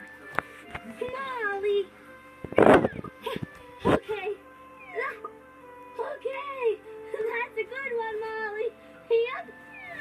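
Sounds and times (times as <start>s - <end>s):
soft background music: 0.0s - 10.0s
squeaky meow-like voice: 4.8s - 5.3s, 9.7s - 10.0s.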